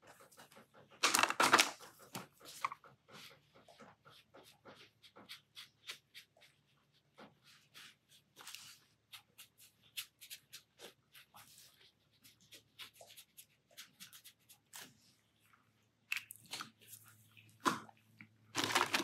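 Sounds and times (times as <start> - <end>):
pen scratching on paper: 3.2 - 14.9.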